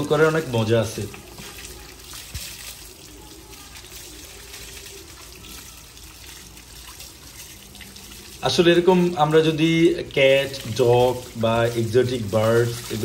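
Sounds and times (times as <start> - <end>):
hose water running: 0.0 - 13.0
water splashing on concrete: 0.0 - 13.0.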